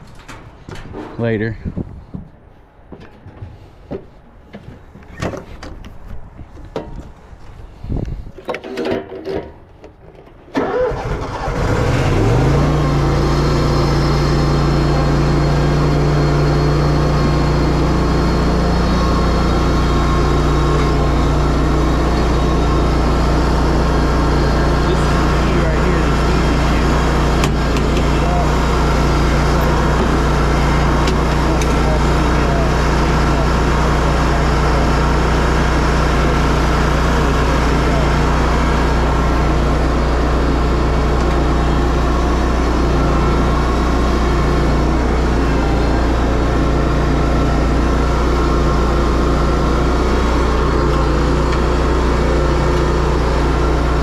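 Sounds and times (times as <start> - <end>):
mower engine starting and running: 7.8 - 54.0.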